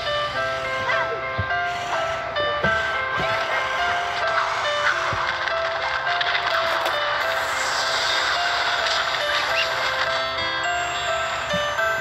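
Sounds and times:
electronic chime-like tune: 7.0s - 12.0s.

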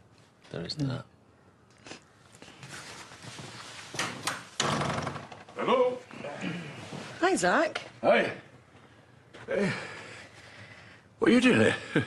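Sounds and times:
people shifting on sofa: 2.4s - 7.6s
rush of noise from opening door: 4.0s - 5.3s.

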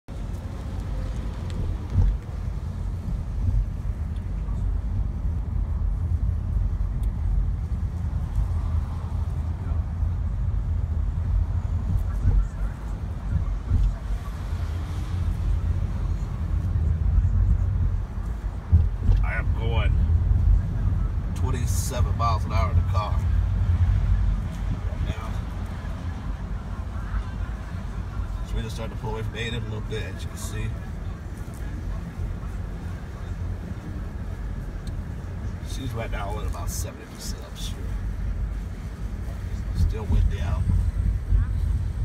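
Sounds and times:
car rumble from inside cabin: 0.1s - 42.0s.

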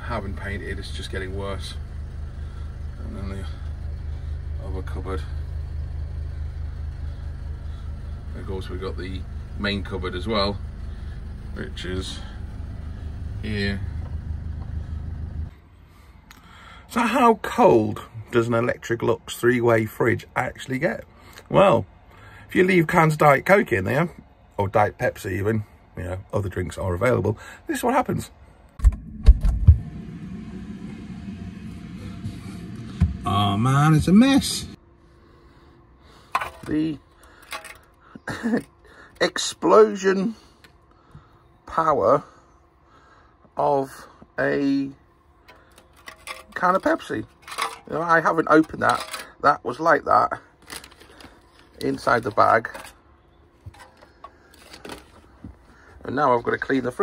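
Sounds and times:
low handling rumble: 0.0s - 15.6s, 28.8s - 35.4s
handling knocks and clunks: 36.3s - 36.7s, 45.4s - 49.4s, 53.6s - 56.7s
plastic bag rustling: 50.6s - 51.8s.

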